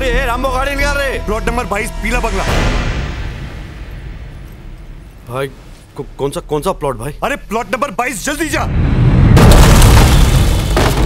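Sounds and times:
dramatic film music: 0:00.0 - 0:09.4
deep boom: 0:08.6 - 0:11.0.

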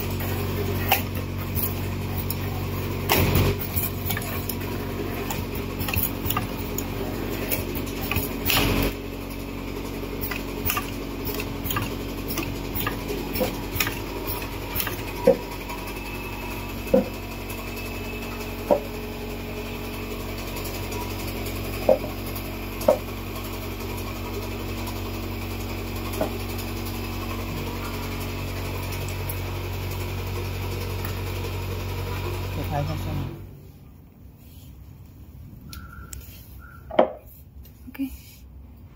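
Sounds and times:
loud burst of machine noise: 0:00.0 - 0:22.6
bottle-capping machine hum: 0:00.0 - 0:33.4.

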